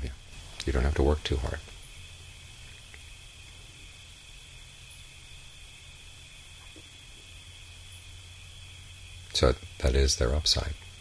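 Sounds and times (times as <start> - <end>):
even hiss: 0.0 - 11.0.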